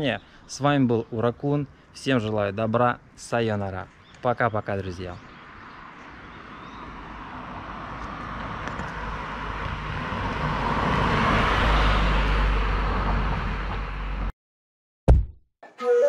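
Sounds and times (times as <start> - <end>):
car driving past: 5.9 - 14.3.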